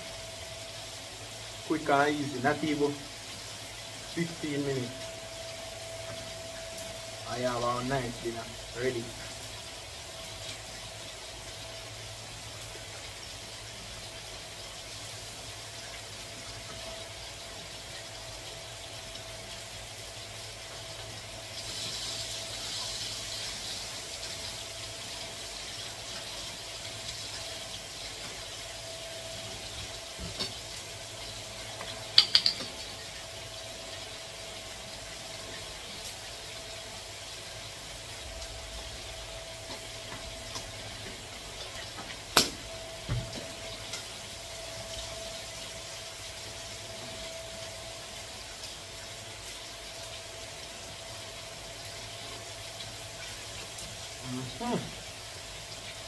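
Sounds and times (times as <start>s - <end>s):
low hiss: 0.0s - 56.0s
fork clinking on ceramic plate: 32.2s - 32.9s.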